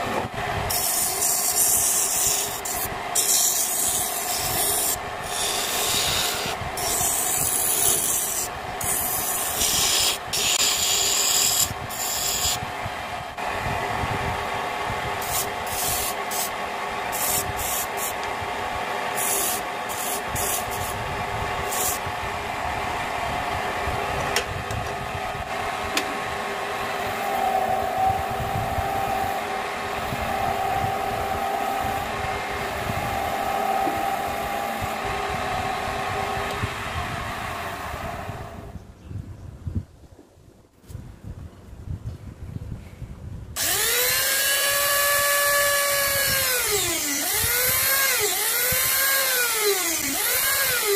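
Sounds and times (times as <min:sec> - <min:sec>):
chisel scraping spinning wood: 0:00.0 - 0:12.6
wood lathe motor hum: 0:00.0 - 0:38.6, 0:43.6 - 0:50.9.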